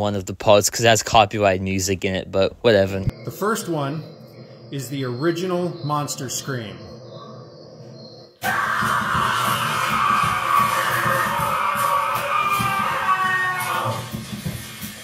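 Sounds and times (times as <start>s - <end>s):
monster scream: 8.4s - 14.2s.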